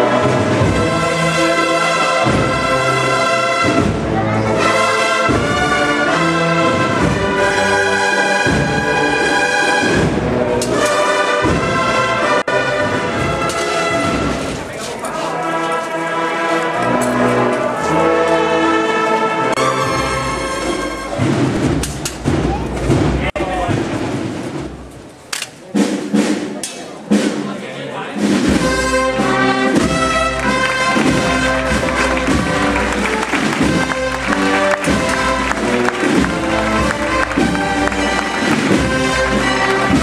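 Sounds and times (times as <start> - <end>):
brass band playing a march: 0.0 - 24.8, 28.2 - 40.0
crowd voices: 0.0 - 40.0.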